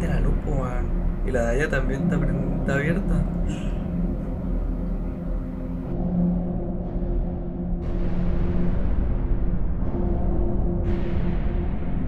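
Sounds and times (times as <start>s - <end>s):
low drone: 0.0s - 12.0s.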